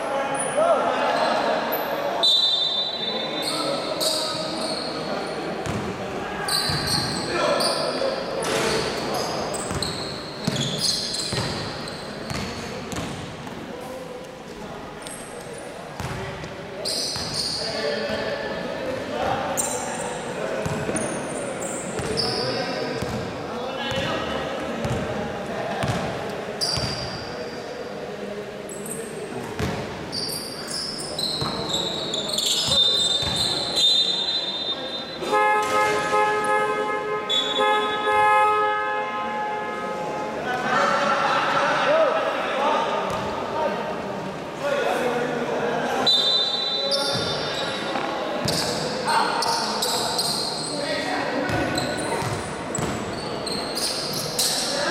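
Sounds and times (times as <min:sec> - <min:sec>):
sneakers squeaking: 0:02.2 - 0:13.6, 0:15.0 - 0:18.4, 0:19.3 - 0:25.1, 0:25.7 - 0:27.7, 0:28.7 - 0:36.6, 0:46.0 - 0:54.9
basketball bouncing: 0:11.3 - 0:11.6, 0:12.3 - 0:13.2, 0:25.8 - 0:26.1, 0:52.2 - 0:53.0.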